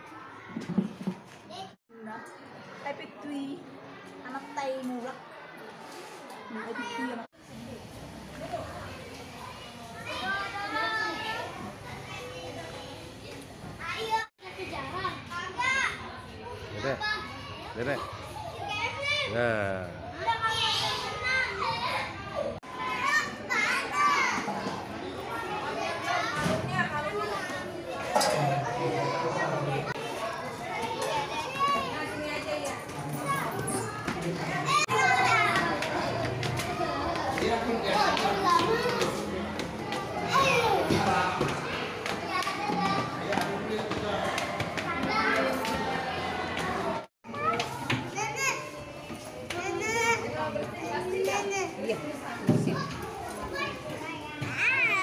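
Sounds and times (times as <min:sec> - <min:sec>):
young children chattering: 0:01.5 - 0:55.0.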